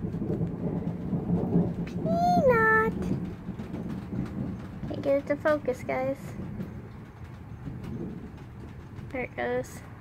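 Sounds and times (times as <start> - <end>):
thunder rumbling: 0.0 - 10.0.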